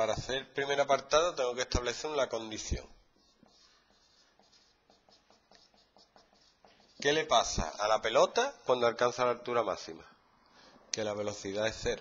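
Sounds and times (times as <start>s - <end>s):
marker scratching on whiteboard: 1.7s - 8.1s.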